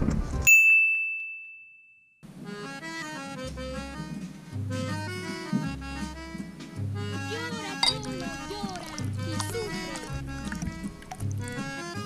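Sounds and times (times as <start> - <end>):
background music with bass line: 3.2 - 12.0.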